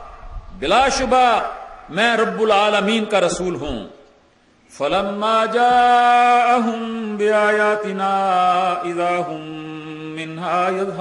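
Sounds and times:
man chanting verse: 0.0 - 4.0, 4.8 - 11.0.

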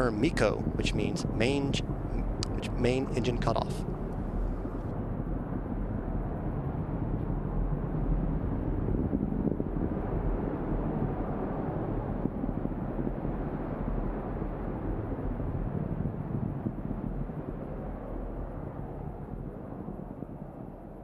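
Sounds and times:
distant rocket engine rumble: 0.0 - 21.0.

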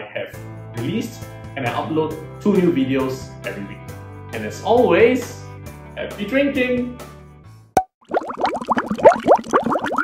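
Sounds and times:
liquid bubbling and glugging: 7.8 - 10.0.

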